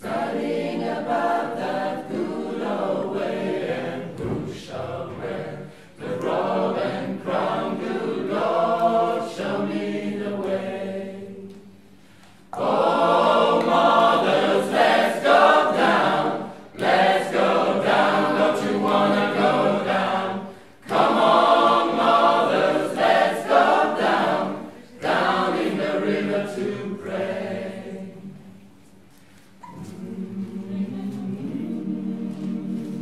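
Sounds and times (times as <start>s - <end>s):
mixed choir singing a cappella: 0.0s - 33.0s.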